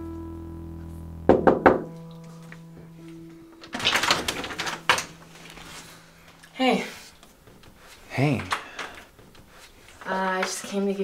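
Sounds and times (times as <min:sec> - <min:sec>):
knocks on wooden door: 0:01.3 - 0:01.9.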